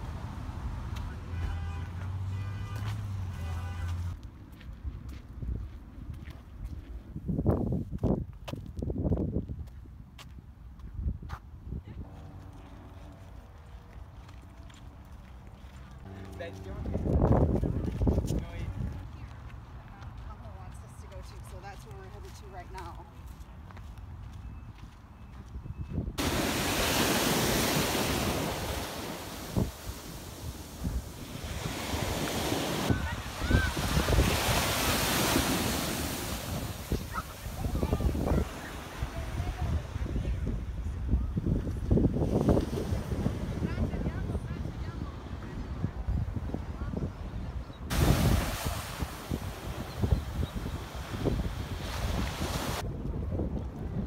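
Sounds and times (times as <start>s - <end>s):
wind buffeting microphone: 4.6s - 14.2s, 14.9s - 22.3s, 24.2s - 54.0s
ocean surf breaking: 26.2s - 40.0s, 47.9s - 52.8s.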